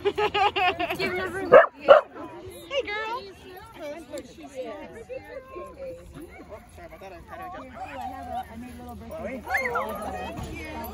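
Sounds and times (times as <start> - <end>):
people's voices: 0.0 - 10.9.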